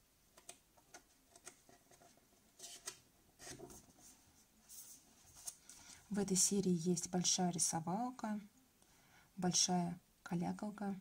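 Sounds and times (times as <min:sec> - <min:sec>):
paper rustling: 0:01.3 - 0:06.1.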